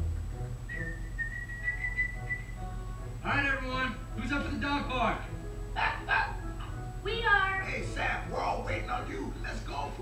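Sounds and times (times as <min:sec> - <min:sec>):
soft background music: 0:00.0 - 0:10.0
high held whistle-like note: 0:00.7 - 0:02.7.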